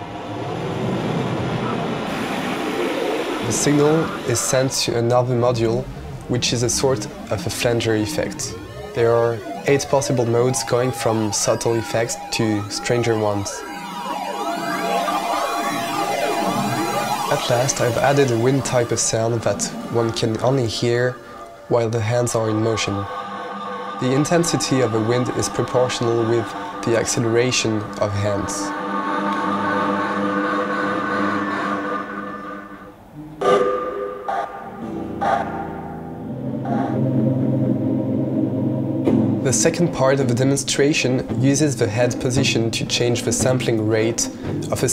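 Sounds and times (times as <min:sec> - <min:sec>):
synthesized tones sweeping: 0:00.0 - 0:44.1.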